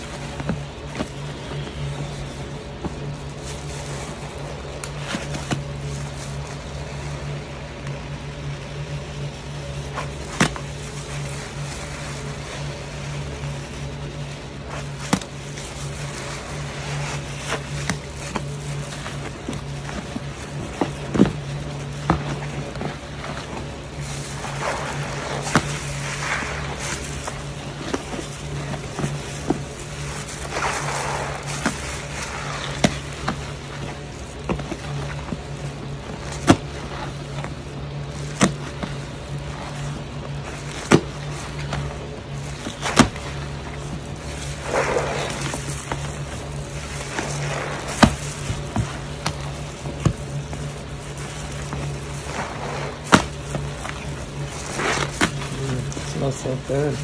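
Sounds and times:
hands squelching wet paste: 0.0 - 57.0
steady low hum: 0.0 - 57.0.

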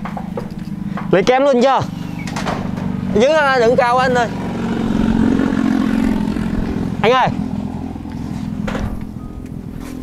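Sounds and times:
motor running with low drone: 0.0 - 10.0.

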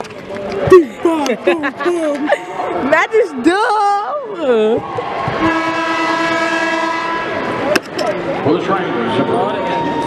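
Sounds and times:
horn long steady note: 5.4 - 7.6.

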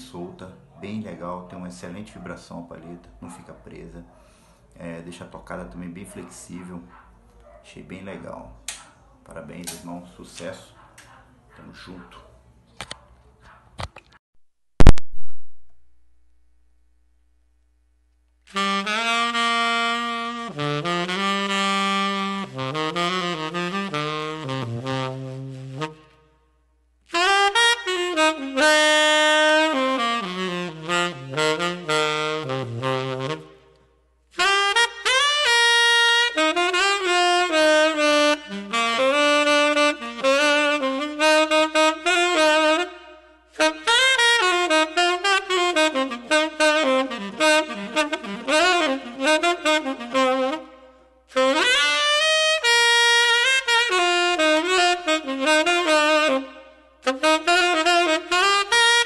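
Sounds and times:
tenor saxophone solo: 18.5 - 26.3, 27.1 - 59.0.

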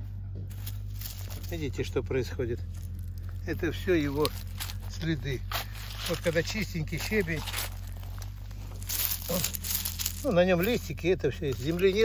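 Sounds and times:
fingers brushing over gravel: 0.5 - 12.0.

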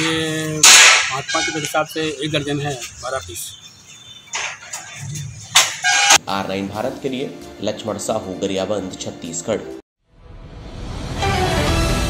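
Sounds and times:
loud bird call: 2.8 - 6.2.

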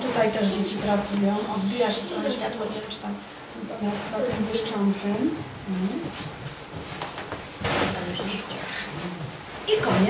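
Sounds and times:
indistinct voices in a room: 0.0 - 10.0.

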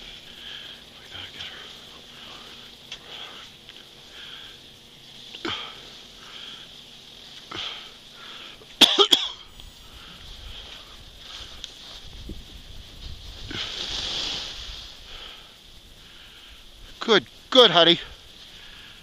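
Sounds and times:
skis scraping over packed snow: 10.6 - 15.0.

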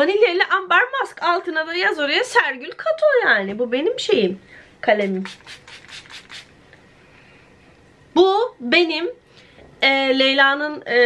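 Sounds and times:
spray bottle hissing puffs: 5.2 - 6.5.

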